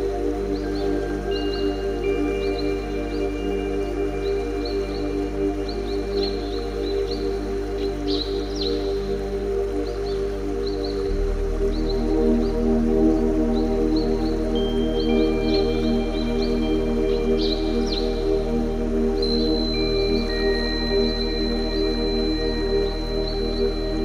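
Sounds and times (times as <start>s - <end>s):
synth drone meditation music: 0.0s - 24.0s.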